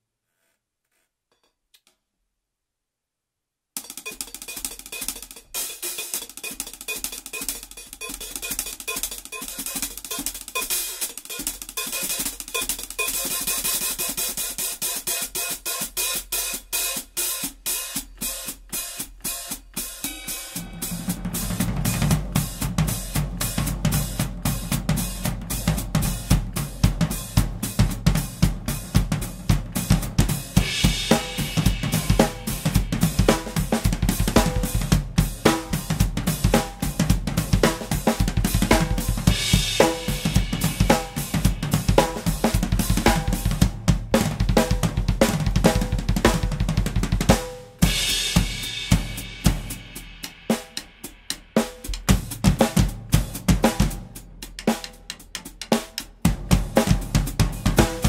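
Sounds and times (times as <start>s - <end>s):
cymbals and hi-hat: 3.8s - 58.0s
snare drum: 3.8s - 58.0s
low drums: 15.9s - 58.0s.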